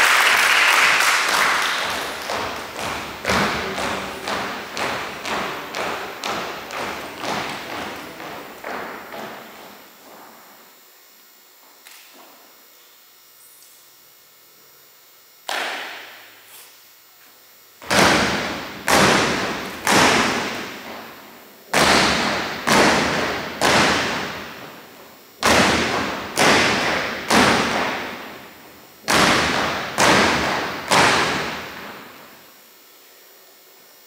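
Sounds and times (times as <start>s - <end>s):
unison drill strikes echoing: 1.3s - 10.6s, 17.8s - 32.4s.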